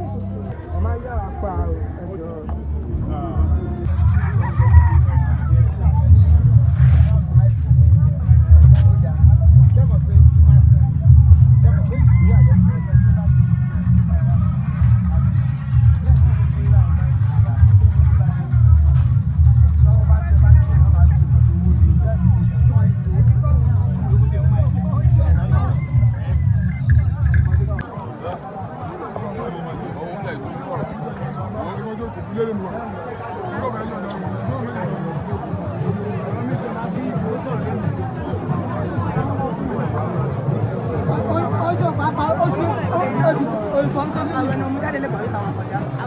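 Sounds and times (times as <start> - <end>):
loud uneven low rumble: 0.0 - 27.9
faint voices: 0.0 - 46.0.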